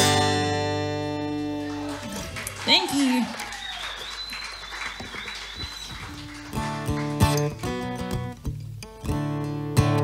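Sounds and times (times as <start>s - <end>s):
faint applause: 1.2s - 7.6s
person whooping: 1.7s - 4.4s.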